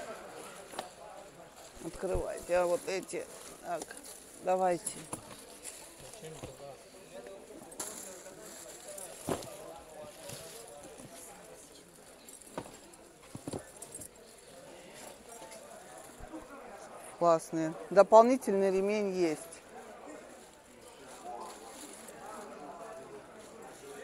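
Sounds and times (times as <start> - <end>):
faint background chatter: 0.0 - 24.0
bags handled in cardboard box: 7.7 - 14.3.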